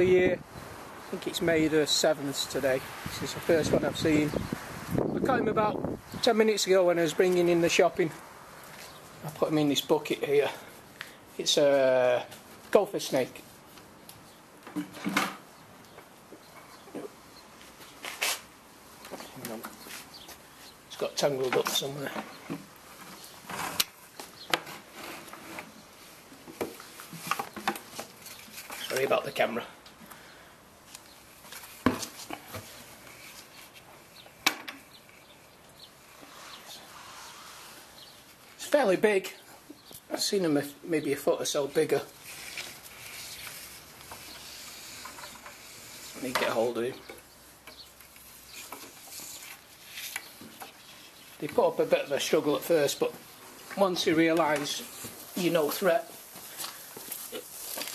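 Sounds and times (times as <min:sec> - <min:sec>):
scrapes and rustles of handling: 0:06.1 - 0:40.5, 0:41.3 - 0:57.9
short rustle: 0:17.6 - 0:18.5, 0:41.9 - 0:46.9, 0:47.8 - 0:57.9
handling knocks and scrapes: 0:21.0 - 0:25.8.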